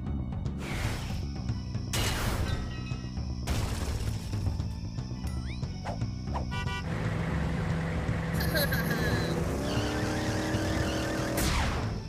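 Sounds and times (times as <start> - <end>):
action background music: 0.0 - 12.0
cartoon van engine speeding up: 6.8 - 12.0.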